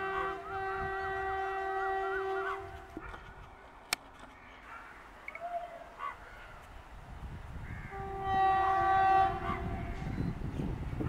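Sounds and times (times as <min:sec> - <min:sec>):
locomotive horn blast: 0:00.0 - 0:03.1, 0:07.8 - 0:10.1.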